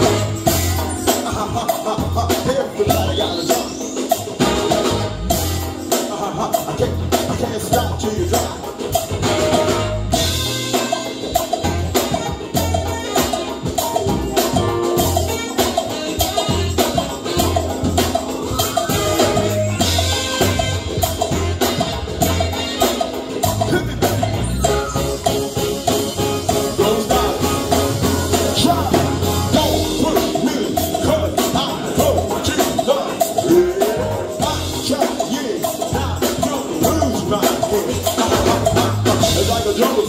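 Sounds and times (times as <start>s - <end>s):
drum kit steady beat: 0.0s - 40.0s
live band playing reggae jazz: 0.0s - 40.0s
repeating bass line: 0.0s - 40.0s
saxophone: 0.0s - 40.0s.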